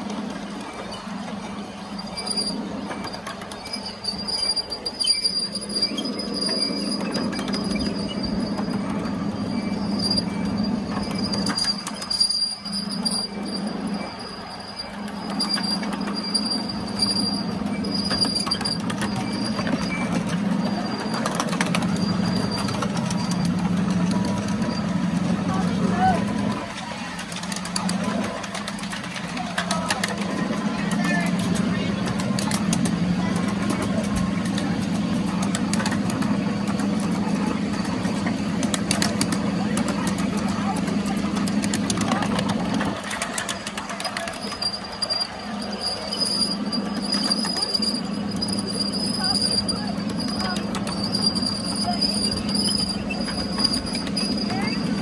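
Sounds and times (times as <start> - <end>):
miniature train rumbling: 0.0 - 55.0
wheels clicking on rails: 0.0 - 55.0.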